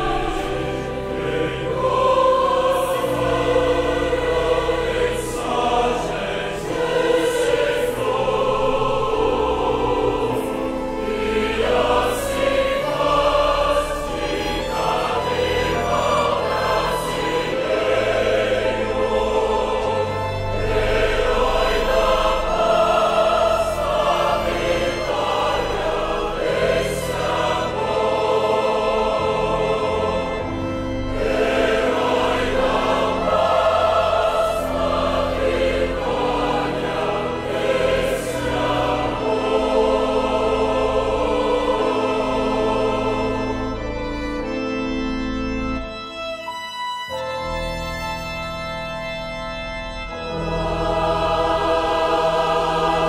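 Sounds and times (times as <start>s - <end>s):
choir singing a hymn: 0.0s - 53.0s
sustained instrumental accompaniment: 0.0s - 53.0s.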